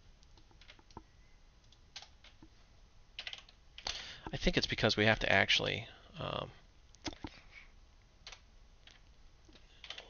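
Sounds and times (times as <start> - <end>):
computer keyboard keystrokes: 0.3 - 1.0, 3.2 - 4.0, 8.2 - 10.0.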